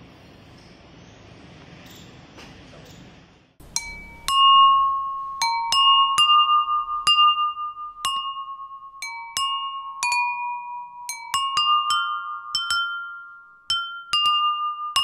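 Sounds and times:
water-filled bowls struck melody: 3.6 - 15.0.

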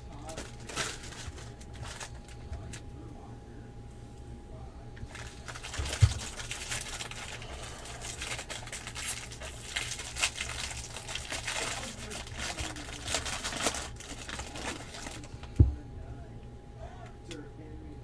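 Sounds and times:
foil wrappers tearing and crinkling: 0.1 - 2.8, 5.0 - 15.5.

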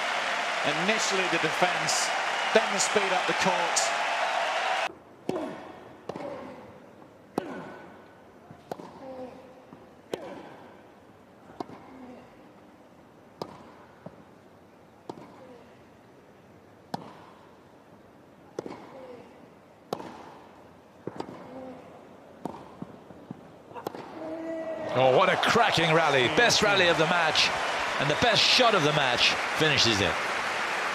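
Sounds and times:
tennis balls struck by rackets: 8.6 - 9.0, 11.5 - 11.9, 13.4 - 14.2, 15.0 - 15.4, 16.9 - 17.4, 18.5 - 18.9, 19.9 - 21.5, 22.4 - 24.2.

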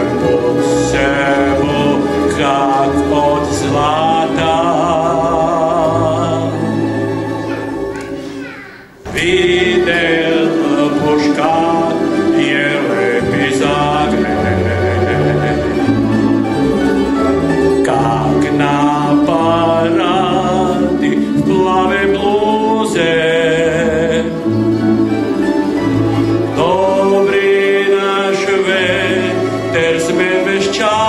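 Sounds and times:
choir and string orchestra chord: 0.0 - 7.1, 9.1 - 31.0.

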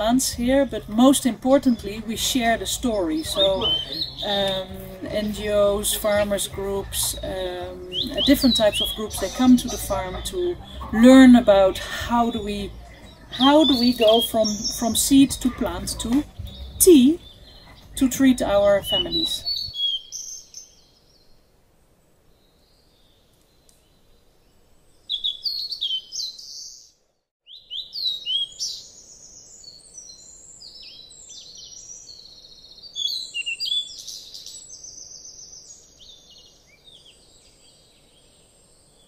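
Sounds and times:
birds chirping and whistling: 0.0 - 21.2, 25.1 - 39.0.

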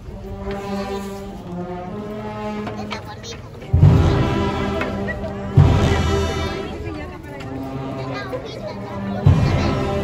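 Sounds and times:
brass band playing funeral march: 0.0 - 10.0.

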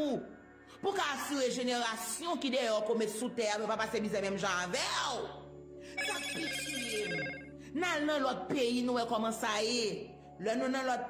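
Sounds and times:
electronic ringing tone: 6.0 - 7.6.

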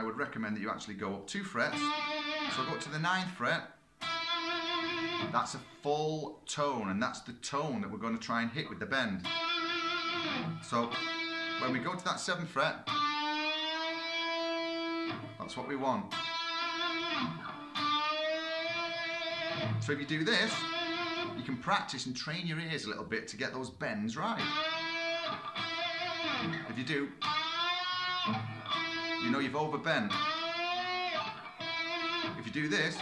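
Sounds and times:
electric guitar note bending: 1.7 - 2.9, 4.0 - 5.8, 9.2 - 11.7, 12.9 - 15.5, 16.1 - 21.4, 24.4 - 29.5, 30.1 - 33.0
electric guitar note picked: 1.7 - 2.9, 4.0 - 5.8, 9.2 - 11.6, 12.9 - 15.4, 16.1 - 21.4, 24.4 - 29.3, 30.1 - 33.0.

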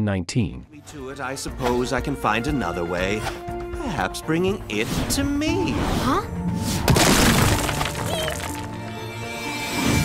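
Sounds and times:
background music: 0.6 - 10.0.

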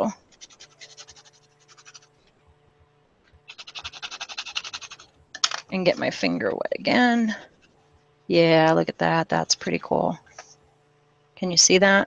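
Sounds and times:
fingertip rubbing textured paper: 0.2 - 2.2, 3.5 - 5.1.

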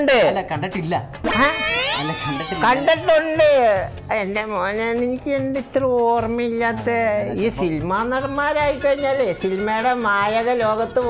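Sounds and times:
man's wailing falsetto voice: 1.3 - 3.2.

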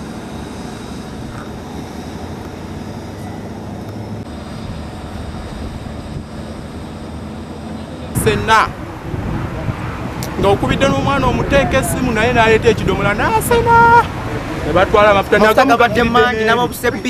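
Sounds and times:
road traffic rumble: 0.0 - 17.0.

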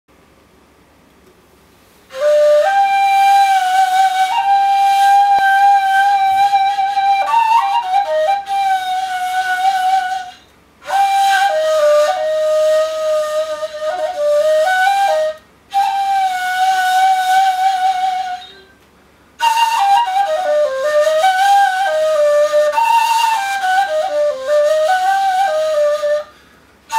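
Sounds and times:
breathy cane flute solo: 2.1 - 26.9.

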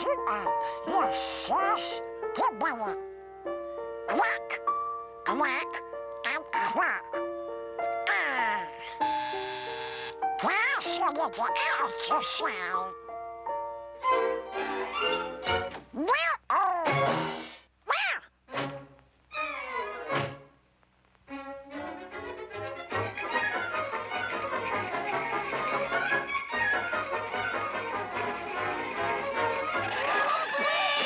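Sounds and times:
quacking cartoon duck voice: 0.0 - 3.0, 4.1 - 4.6, 5.3 - 7.2, 10.4 - 12.9, 16.0 - 17.0, 17.9 - 18.3, 30.0 - 31.0
orchestral cartoon music: 0.0 - 17.6, 18.5 - 20.6, 21.3 - 31.0
cartoon orchestral music: 21.7 - 31.0.

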